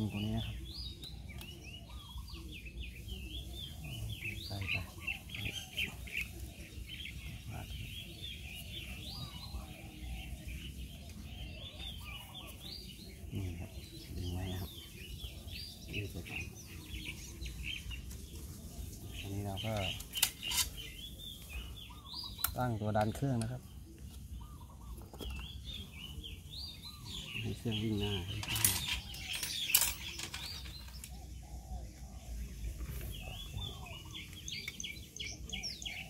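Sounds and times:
lower bird calls: 0:00.0 - 0:36.0
small birds chirping: 0:00.0 - 0:36.0.

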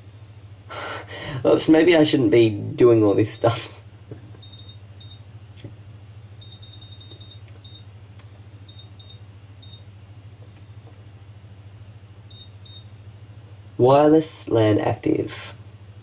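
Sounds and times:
low steady hum: 0:00.0 - 0:16.0
printer key beeps: 0:04.4 - 0:05.2, 0:06.4 - 0:07.8, 0:08.7 - 0:09.8.

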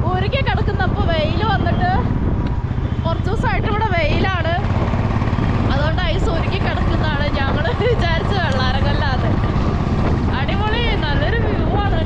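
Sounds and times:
motorcycle engine rumble: 0:00.0 - 0:12.0
person talking: 0:10.3 - 0:12.0.

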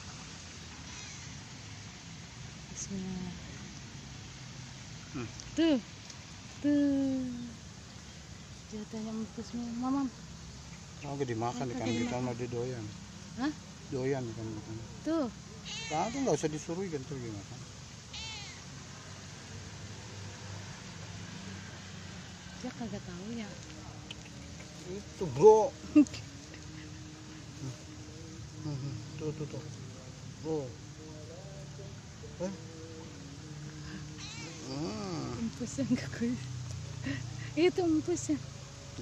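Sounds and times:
cat meowing: 0:11.8 - 0:12.3, 0:15.6 - 0:16.3, 0:18.1 - 0:18.6, 0:34.2 - 0:34.7.

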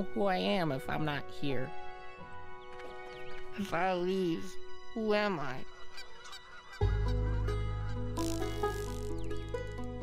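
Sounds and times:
flock of birds calling: 0:05.4 - 0:07.1.

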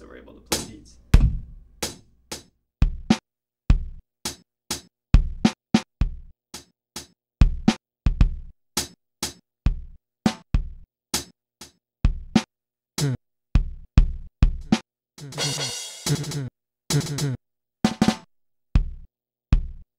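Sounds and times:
sampled drum beat through speakers: 0:00.0 - 0:19.9
sticks hitting drum pads: 0:00.5 - 0:02.0.

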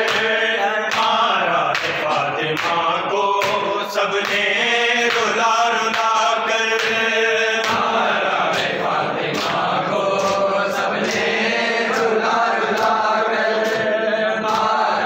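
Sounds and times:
men chanting together: 0:00.0 - 0:15.0
rhythmic chest-beating slaps: 0:00.0 - 0:15.0.

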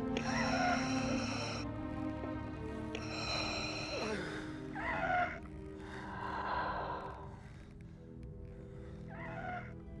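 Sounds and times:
wheezy respirator breathing: 0:00.0 - 0:01.7, 0:03.0 - 0:04.8
soft orchestral music: 0:00.0 - 0:10.0.

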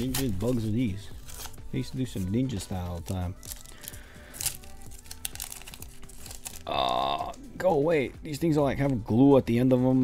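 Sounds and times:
foil wrapper tearing and crinkling: 0:00.0 - 0:07.4.

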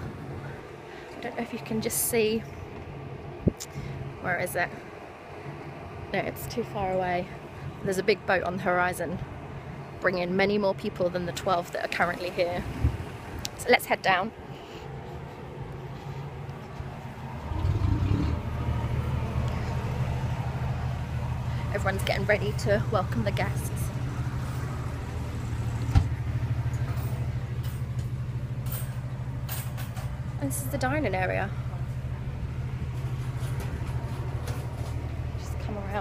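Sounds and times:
low engine rumble: 0:00.0 - 0:36.0
low machinery drone: 0:00.0 - 0:36.0.

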